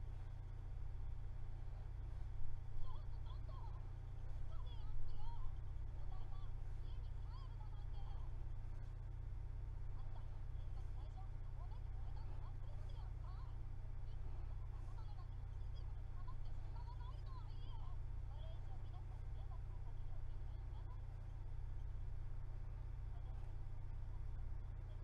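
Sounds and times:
steady low hum: 0:00.0 - 0:25.0
faint indistinct voices: 0:01.3 - 0:25.0.

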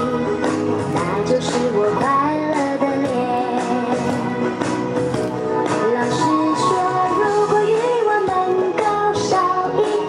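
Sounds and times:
instrumental accompaniment: 0:00.0 - 0:10.0.

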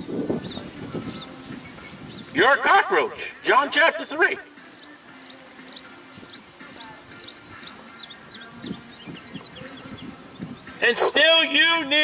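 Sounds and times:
bird chirping: 0:00.3 - 0:02.4, 0:04.0 - 0:11.2.

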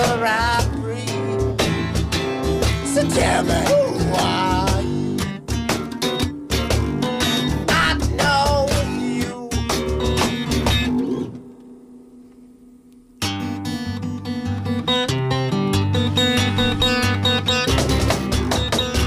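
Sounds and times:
guitar-led band song: 0:00.0 - 0:11.4, 0:13.3 - 0:19.0.

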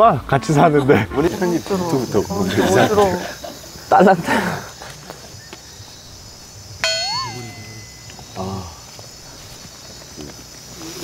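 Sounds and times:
bell-like ding: 0:06.8 - 0:08.4.

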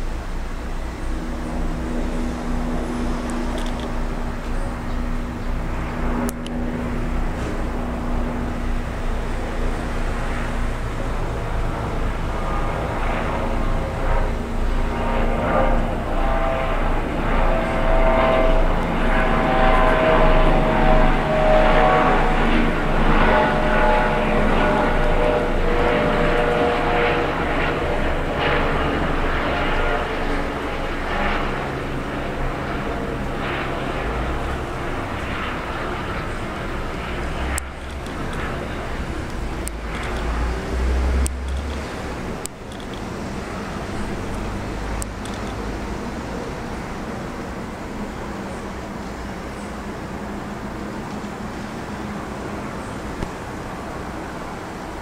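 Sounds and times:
helicopters flying past: 0:00.0 - 0:55.0.

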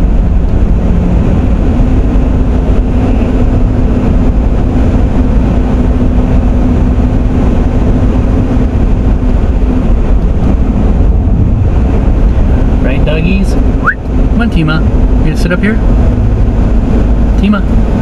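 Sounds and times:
road and engine rumble: 0:00.0 - 0:18.0.

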